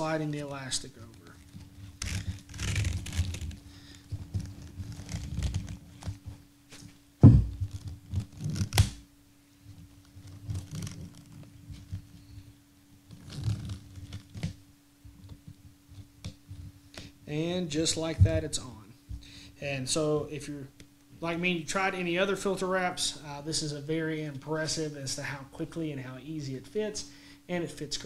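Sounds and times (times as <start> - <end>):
fabric rustling and stretching: 0.0 - 8.8, 9.6 - 12.5, 13.1 - 14.6
faint steady hum: 0.0 - 28.0
sharp thump: 7.2 - 7.7.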